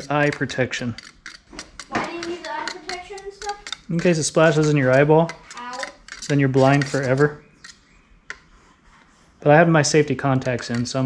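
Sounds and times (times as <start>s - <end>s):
metal stirrer scraping in can: 0.0s - 7.8s, 10.0s - 11.0s.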